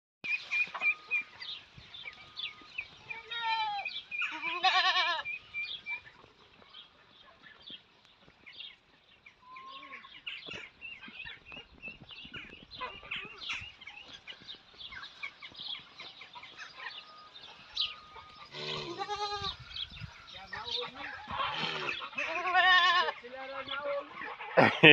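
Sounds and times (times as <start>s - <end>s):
quiet animal sounds: 0.3s - 24.9s
goats bleating: 3.1s - 5.3s, 18.2s - 19.6s, 21.0s - 23.2s.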